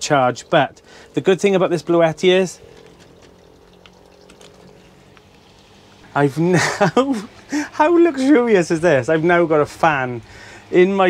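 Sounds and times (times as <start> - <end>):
desk fan humming: 0.0 - 11.0.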